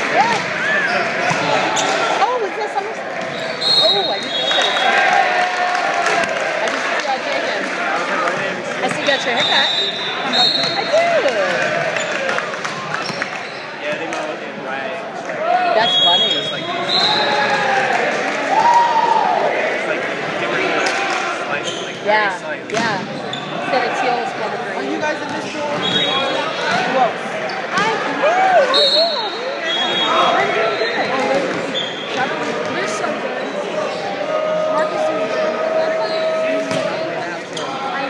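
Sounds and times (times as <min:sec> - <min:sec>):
many people talking and calling: 0:00.0 - 0:38.0.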